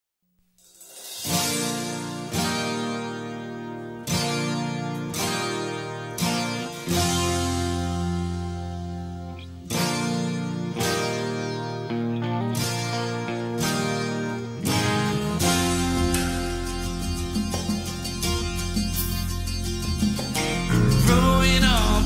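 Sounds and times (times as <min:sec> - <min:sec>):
strummed guitar chords: 0:01.1 - 0:22.0.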